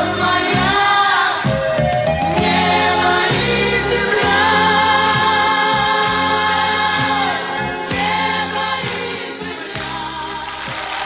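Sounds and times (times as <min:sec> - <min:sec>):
bass and band backing: 0:00.0 - 0:11.0.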